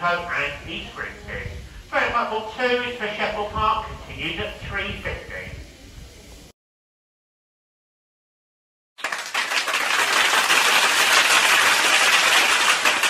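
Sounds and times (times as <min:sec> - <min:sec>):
crowd applauding: 0:09.0 - 0:13.0.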